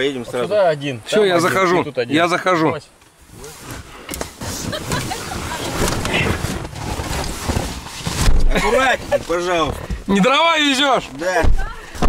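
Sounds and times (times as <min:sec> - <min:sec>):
inflatable boat scraping seats: 0:03.2 - 0:10.2.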